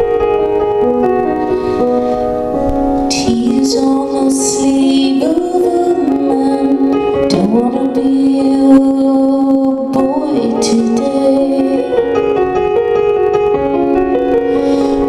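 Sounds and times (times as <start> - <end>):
grand piano chords: 0.0 - 15.0
woman singing: 3.1 - 12.1.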